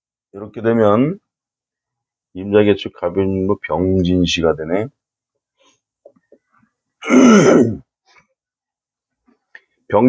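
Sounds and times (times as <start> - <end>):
man clearing his throat: 7.0 - 7.9.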